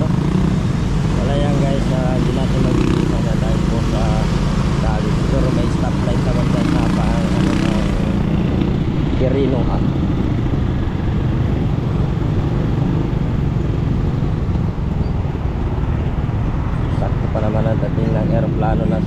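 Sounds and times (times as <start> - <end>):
road noise: 0.0 - 19.0.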